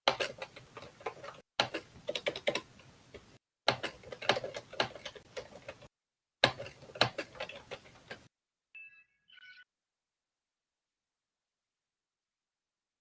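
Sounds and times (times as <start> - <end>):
computer keyboard typing: 0.0 - 2.7, 3.7 - 8.3.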